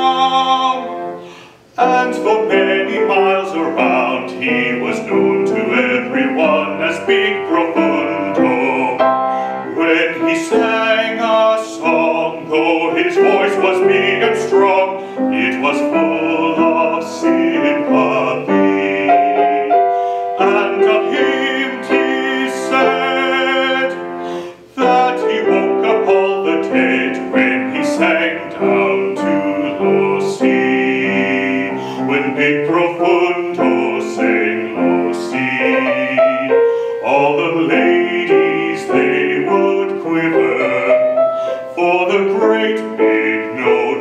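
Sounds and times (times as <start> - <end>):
man singing operatically: 0.0 - 44.0
piano accompaniment: 0.0 - 44.0.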